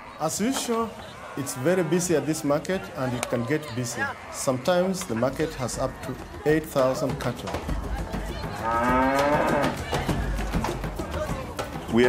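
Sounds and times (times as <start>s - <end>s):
busy cattle market noise: 0.0s - 12.0s
scattered knocks: 4.9s - 12.0s
cow mooing: 8.6s - 9.8s.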